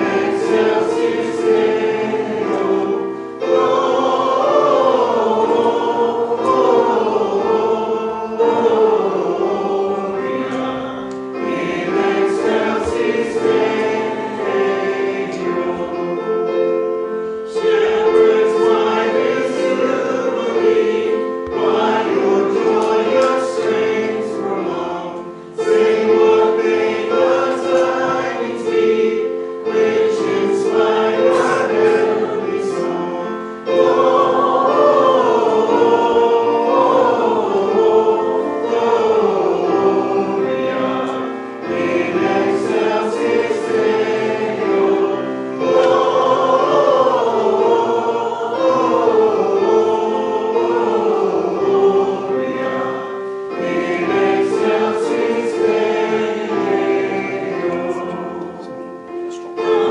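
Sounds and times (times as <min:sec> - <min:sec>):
congregation singing a hymn: 0:00.0 - 0:59.9
keyboard accompaniment: 0:00.0 - 0:59.9.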